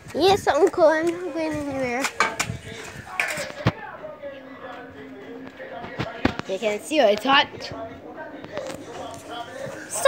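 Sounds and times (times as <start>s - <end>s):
people talking quietly: 0.0s - 10.0s.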